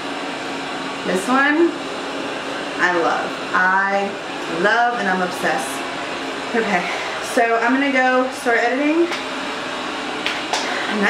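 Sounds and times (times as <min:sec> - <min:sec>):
robot vacuum cleaner running: 0:00.0 - 0:11.0.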